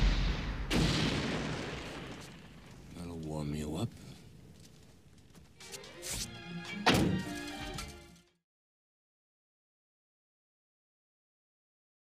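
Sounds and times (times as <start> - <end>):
car bomb explosion: 0.0 - 2.7
film score music: 5.4 - 8.4
heavy thunk: 6.9 - 7.3.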